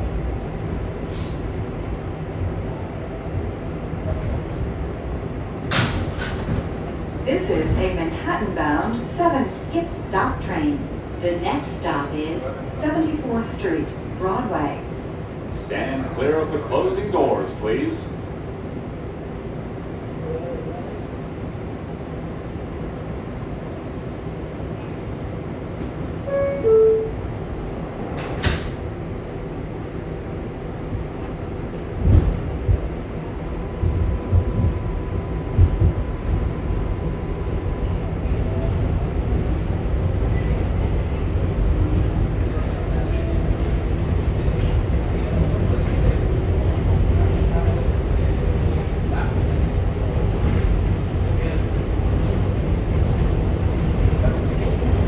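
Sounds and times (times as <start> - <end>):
subway train running rumble: 0.0 - 55.0
train doors banging shut: 5.6 - 6.8, 28.1 - 28.8.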